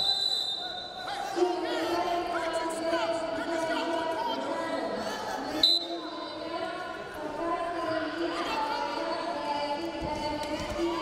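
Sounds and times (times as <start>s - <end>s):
referee's whistle blast: 0.0s - 1.0s
voices in large hall: 0.0s - 11.0s.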